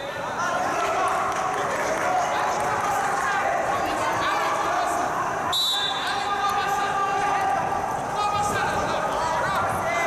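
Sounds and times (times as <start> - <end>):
arena crowd voices: 0.0 - 10.0
referee's whistle blast: 5.5 - 6.3.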